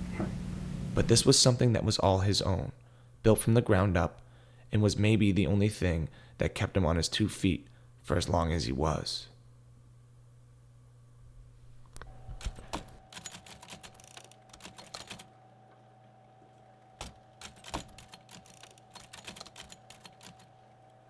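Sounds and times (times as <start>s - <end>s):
faint steady hum: 0.0s - 21.0s
typewriter keys typing: 12.3s - 15.3s, 17.0s - 20.7s.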